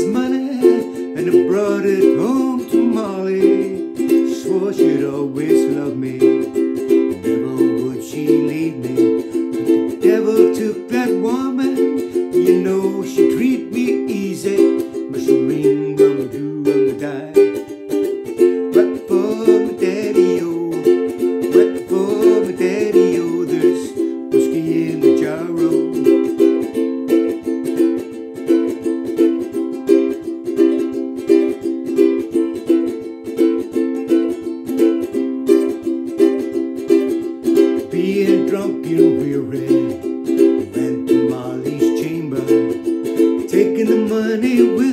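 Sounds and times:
man singing wordless syllables: 0.0 - 17.7, 18.7 - 26.3, 37.7 - 44.9
ukulele strumming: 0.0 - 44.9.

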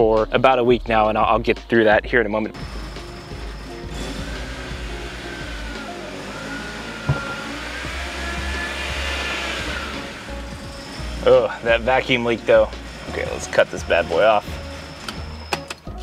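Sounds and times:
car engine idling: 2.6 - 15.8
short knock: 7.1 - 7.4.

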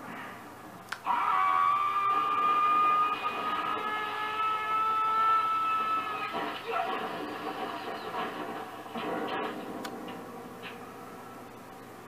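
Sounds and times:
man's long high scream: 1.0 - 6.4.

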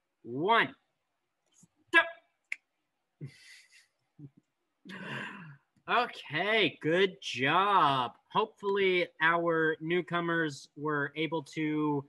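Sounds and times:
person speaking: 0.3 - 0.7, 3.2 - 12.0
soft breathy voice sound: 3.2 - 5.6.

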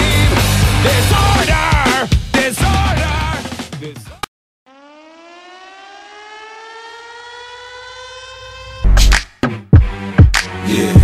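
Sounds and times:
siren winding up: 4.7 - 9.2.

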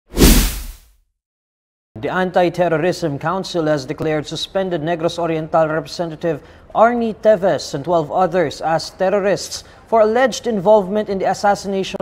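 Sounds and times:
swoosh with deep rumble: 0.2 - 0.8.

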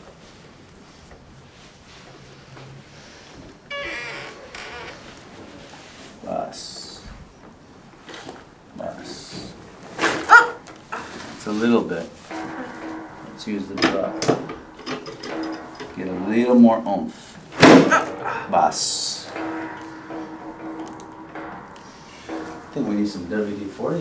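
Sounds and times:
murmured voice: 17.9 - 19.2.

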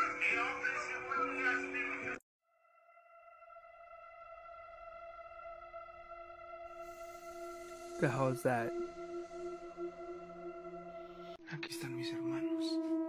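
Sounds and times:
eerie drone music: 0.0 - 13.0.

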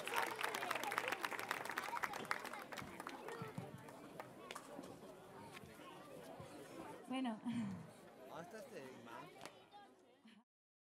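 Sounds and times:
audience applause: 0.0 - 4.3
faint crowd chatter: 0.0 - 10.5.

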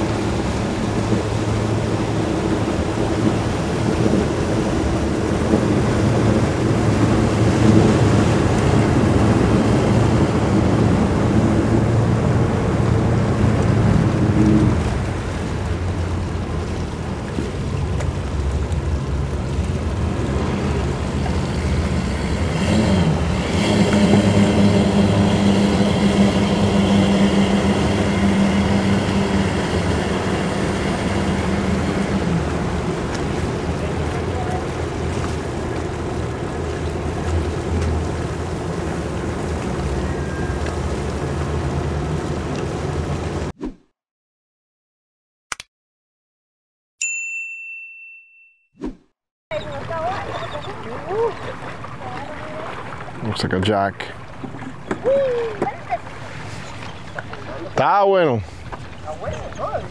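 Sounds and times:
outboard motors droning: 0.0 - 43.5, 49.5 - 59.9
higher engine note: 19.2 - 35.1.

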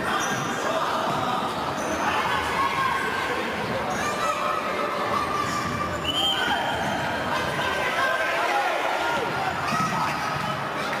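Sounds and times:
echoing hall and spectators noise: 0.0 - 11.0.

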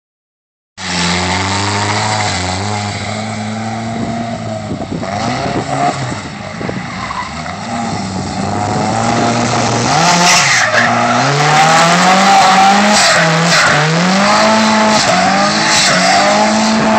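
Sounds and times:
car engine revving: 0.8 - 16.9.

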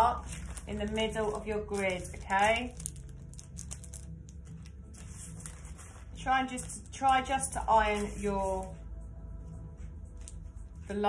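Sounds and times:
foil packets crinkling: 0.0 - 6.9
low room hum: 0.0 - 11.0.

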